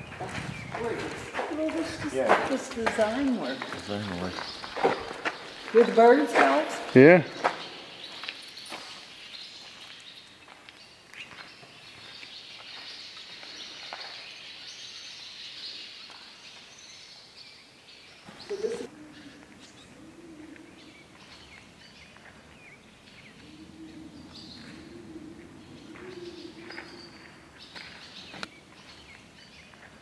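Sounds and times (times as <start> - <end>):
faint bird chirps: 18.2 - 29.2.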